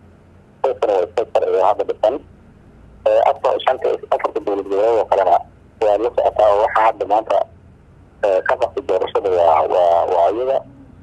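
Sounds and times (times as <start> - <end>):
man talking: 0.6 - 2.3, 3.0 - 7.5, 8.2 - 10.7.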